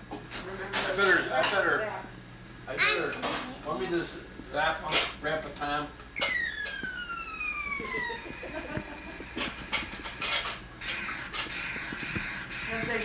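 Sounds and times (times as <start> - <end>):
electronic tone gliding down: 6.3 - 8.6.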